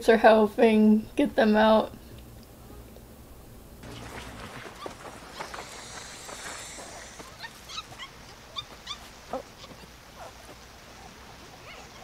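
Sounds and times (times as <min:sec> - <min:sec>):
young ape whimpering calls: 0:03.9 - 0:10.0.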